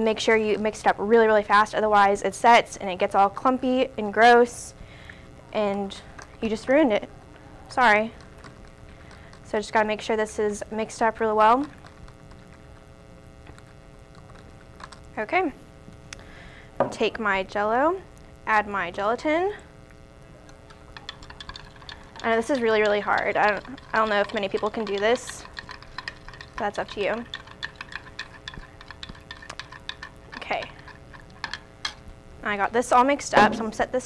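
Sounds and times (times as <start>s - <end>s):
steady electrical hum: 0.0s - 34.0s
spoon stirring in a cup: 7.8s - 10.0s, 20.4s - 32.0s.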